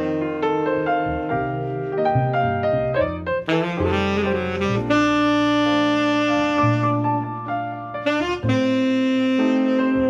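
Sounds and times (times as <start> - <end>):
piano: 0.0 - 10.0
tenor saxophone playing jazz: 0.0 - 10.0
upright bass: 0.0 - 10.0.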